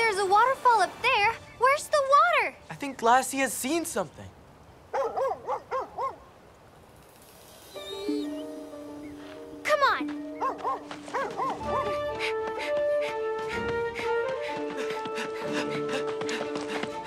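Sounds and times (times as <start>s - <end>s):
dog yelp: 4.9s - 6.2s, 10.4s - 12.0s
cartoon dog barking: 5.0s - 6.2s, 10.4s - 12.0s
orchestral music: 8.1s - 17.0s.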